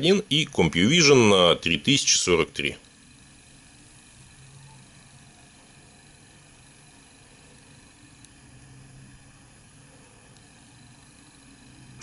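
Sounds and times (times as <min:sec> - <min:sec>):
low hiss: 0:00.0 - 0:12.0
soft low hum: 0:00.0 - 0:12.0.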